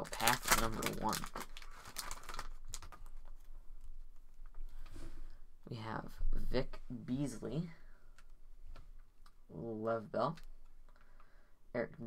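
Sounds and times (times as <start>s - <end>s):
cards and foil wrapper rustling: 0.0s - 3.6s.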